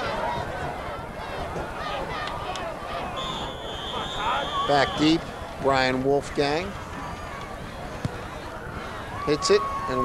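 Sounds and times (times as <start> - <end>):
outdoor crowd background noise: 0.0 - 10.0.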